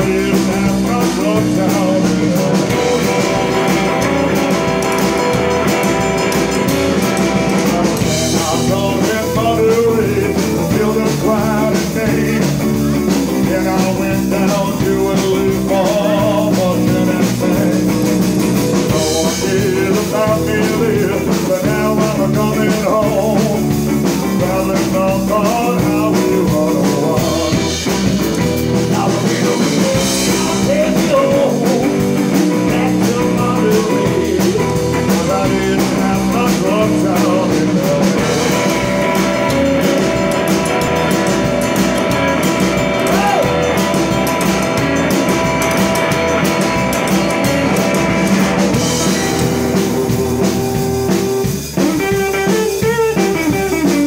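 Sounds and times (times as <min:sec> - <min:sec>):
live rock and roll band: 0:00.0 - 0:54.0.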